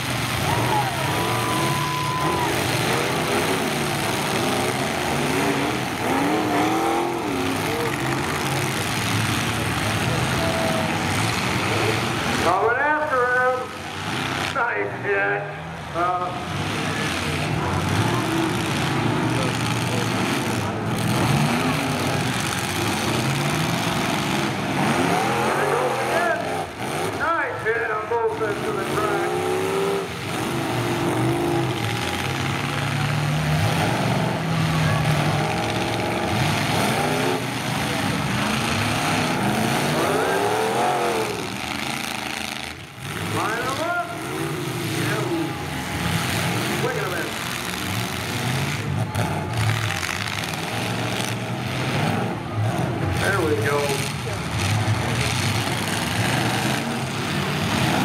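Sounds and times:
car engines revving: 0.0 - 58.0
cars crashing: 0.0 - 58.0
crowd voices: 0.0 - 58.0.

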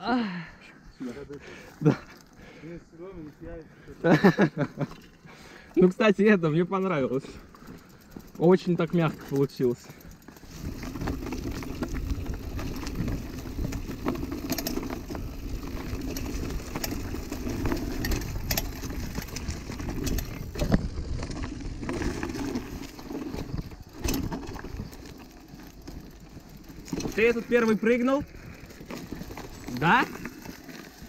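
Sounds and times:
bike tyres rumbling on dirt: 1.4 - 31.0
bike clacking over bumps: 7.5 - 31.0.

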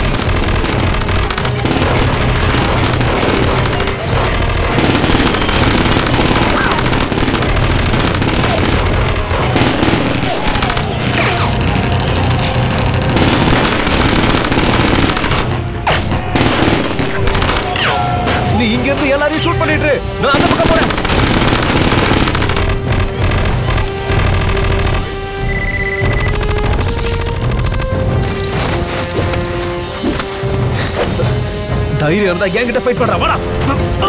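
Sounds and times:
dense gunfire: 0.0 - 17.8, 20.3 - 25.4
film music score: 0.0 - 34.0.

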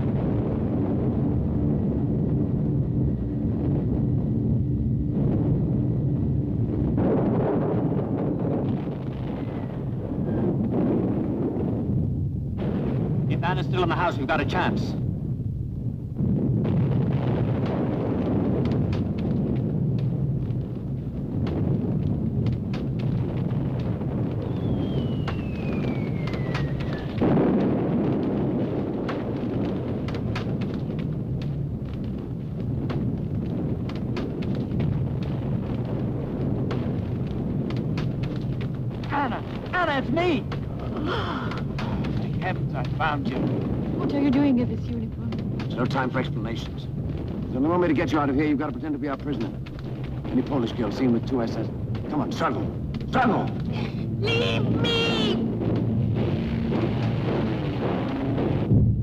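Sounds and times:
loud explosion: 0.0 - 59.0
low rumble of bombardment: 0.0 - 59.0
sharp cracks: 0.0 - 59.0
falling bomb whistle: 24.4 - 27.2.

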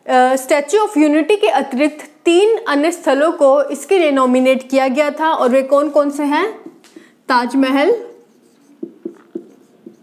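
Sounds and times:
marker pen writing on whiteboard: 5.4 - 10.0.

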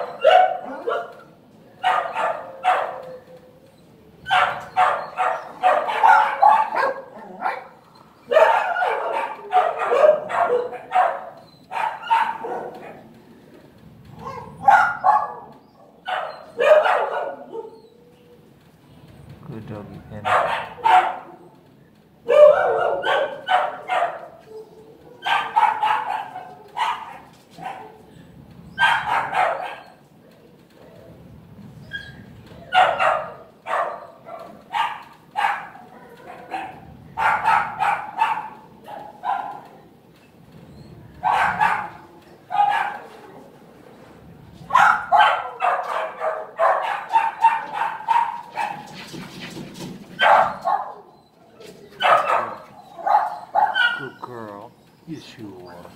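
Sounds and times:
dogs barking in bursts: 0.0 - 3.6, 4.2 - 13.1, 14.1 - 17.9, 20.2 - 21.5, 22.2 - 28.1, 28.8 - 30.1, 32.7 - 40.0, 41.2 - 43.4, 44.6 - 51.2, 51.9 - 55.9.

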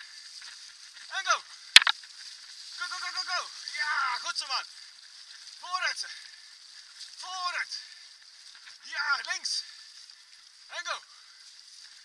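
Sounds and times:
faint steady hiss: 0.0 - 12.0
man calling to a dog: 1.1 - 1.5, 2.8 - 4.7, 5.6 - 6.2, 7.2 - 7.9, 8.8 - 9.7, 10.7 - 11.1.

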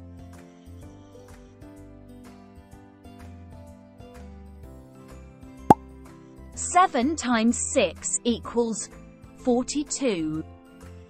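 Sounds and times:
soft background music: 6.6 - 11.0.

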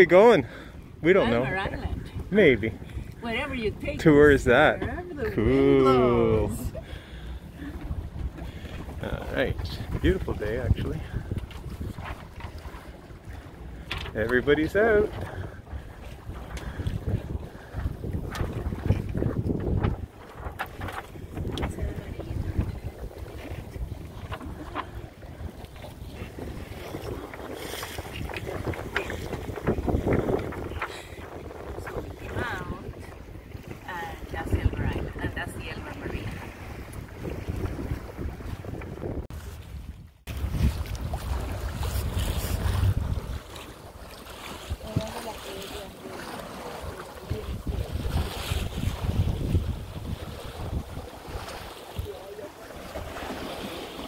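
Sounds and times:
choppy water along hull: 0.0 - 54.0
wind rumbling on microphone: 0.0 - 54.0.

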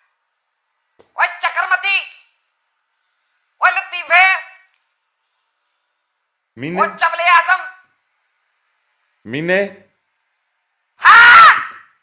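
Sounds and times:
high-pitched scream: 11.0 - 12.0.

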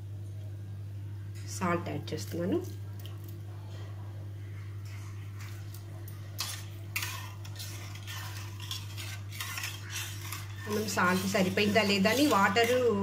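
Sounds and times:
steady low hum: 0.0 - 13.0
spatula scraping metal pan: 6.4 - 13.0.

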